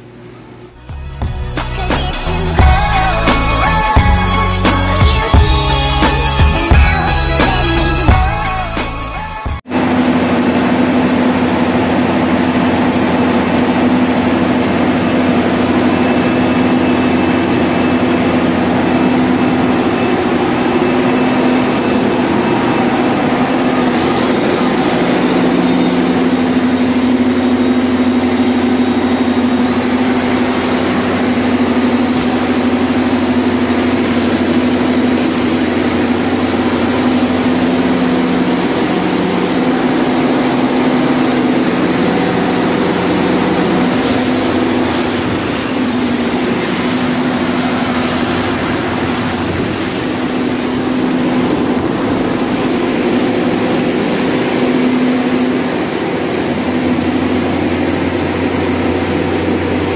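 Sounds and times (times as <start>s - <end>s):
loud machine hum with high whine: 0.0s - 59.9s.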